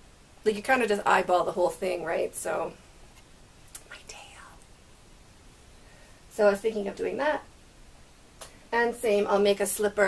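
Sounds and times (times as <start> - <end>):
woman whispering: 3.8 - 4.6.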